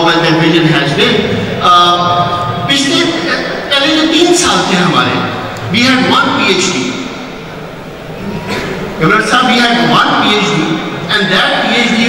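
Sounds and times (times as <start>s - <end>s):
large hall room noise: 0.0s - 12.0s
public address system hiss: 0.0s - 12.0s.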